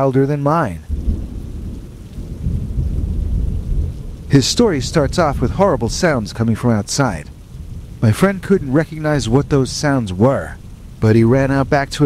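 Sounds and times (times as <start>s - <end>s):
rain hiss: 0.0s - 12.0s
low rolling thunder: 0.8s - 12.0s.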